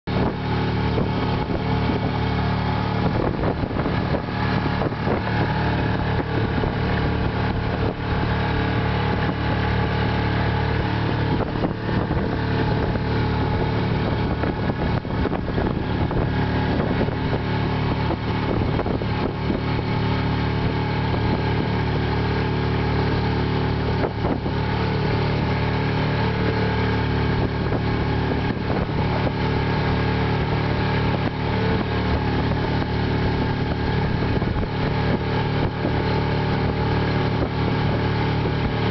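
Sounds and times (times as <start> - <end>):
boat engine running: 0.0 - 38.9.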